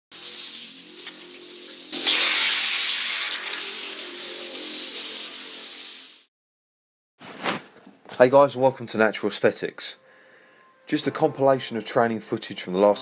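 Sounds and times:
hissing sweep: 0.1 - 6.3.

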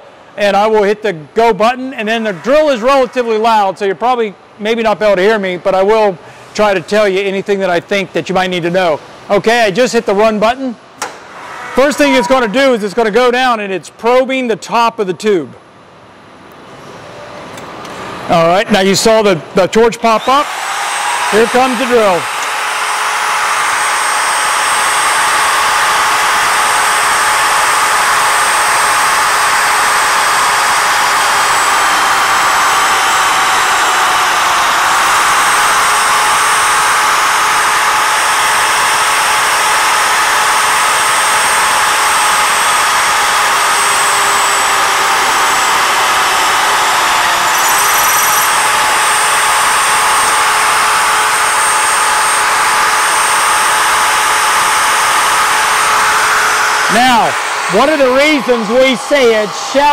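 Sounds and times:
drill motor whining into metal: 20.2 - 59.9.

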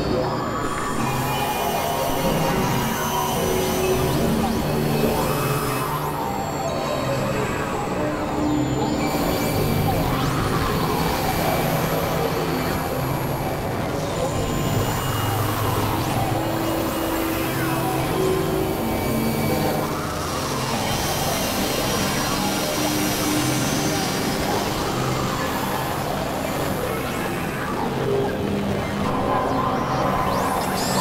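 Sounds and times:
synthesizer drones and noise: 0.0 - 31.0.

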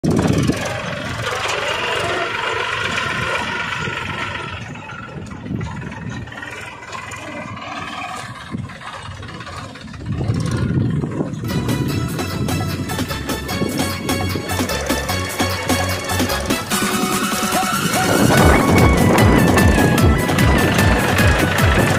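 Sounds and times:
small tractor engine running: 0.0 - 21.9
music: 11.5 - 21.9.

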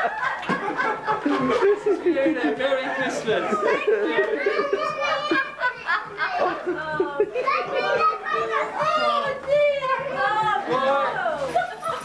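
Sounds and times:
people laughing: 0.0 - 12.0
people talking: 0.7 - 12.0
children's voices: 2.7 - 12.0.

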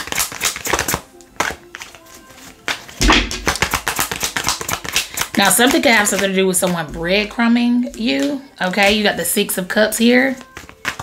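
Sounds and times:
cards being shuffled: 0.0 - 6.8, 10.4 - 11.0.

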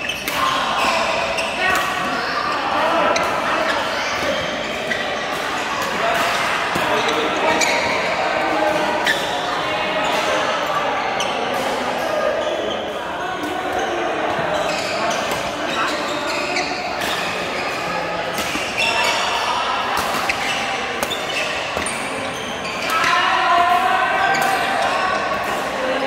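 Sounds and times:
chatter of players: 0.0 - 26.0.

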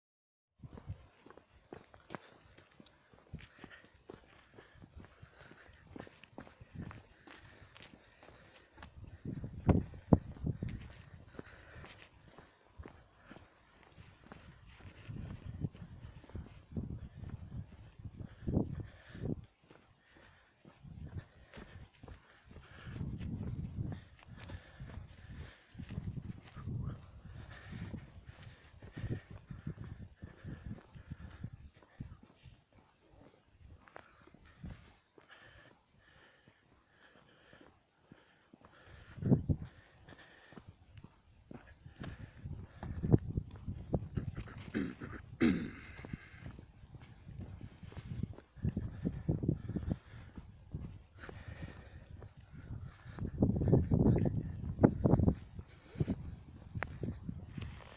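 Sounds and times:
footsteps on pavement: 0.6 - 57.9.

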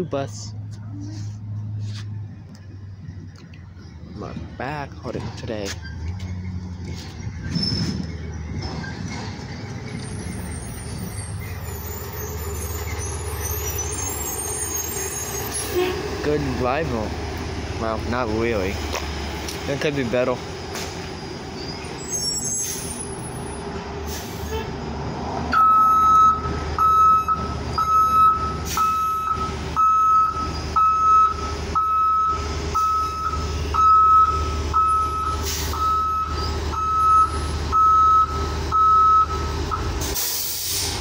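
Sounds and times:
bus engine running: 0.0 - 41.0
reversing alarm beeping: 25.5 - 40.0
air brake hiss: 35.4 - 35.8, 40.1 - 41.0.

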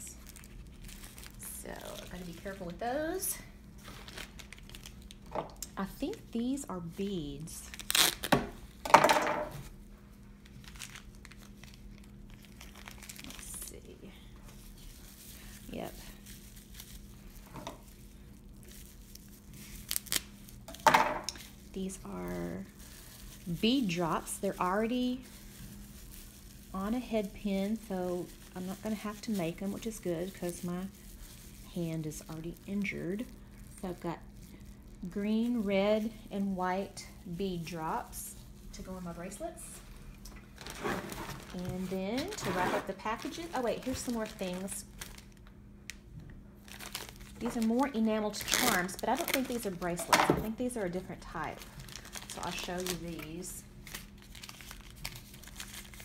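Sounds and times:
bubble wrap crackles: 0.0 - 8.9, 9.5 - 56.0
bubble wrap crinkling: 0.0 - 8.9, 9.5 - 56.0.

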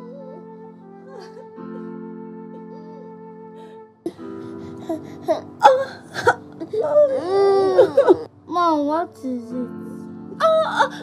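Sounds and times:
woman moaning and wailing: 3.7 - 8.3, 10.4 - 11.0.

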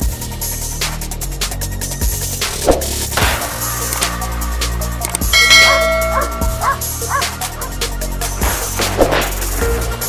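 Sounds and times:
electronic music with bass: 2.0 - 7.9
dog barking: 5.5 - 7.9.

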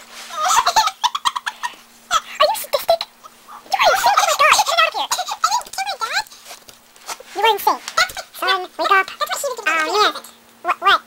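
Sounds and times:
child squealing: 3.6 - 6.1.

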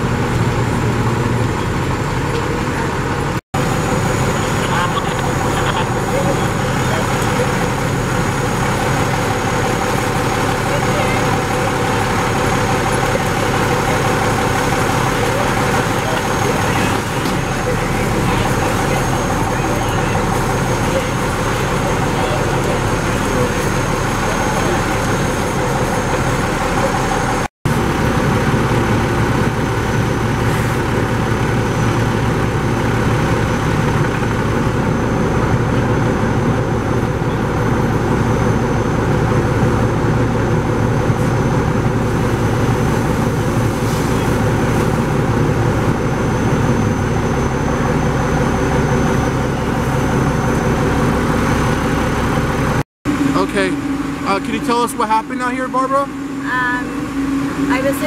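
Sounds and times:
fire engine diesel engine and pump: 0.0 - 58.0
indistinct voices: 1.6 - 27.5.

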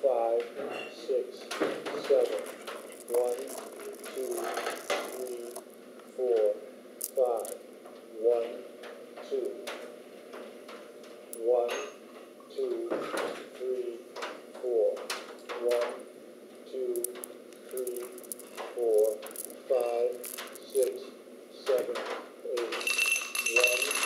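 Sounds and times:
pearl necklace clicking and rattling: 2.2 - 5.8, 7.0 - 7.6, 17.0 - 21.0, 22.8 - 24.0.

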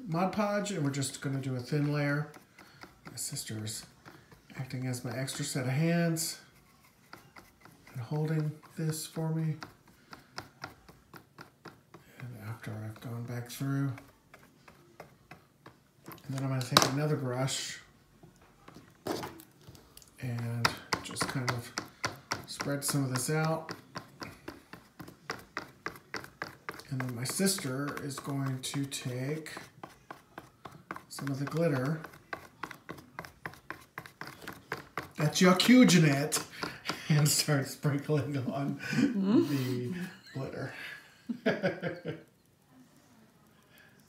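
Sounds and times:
brush clicks and taps: 0.6 - 17.6, 18.2 - 38.7.

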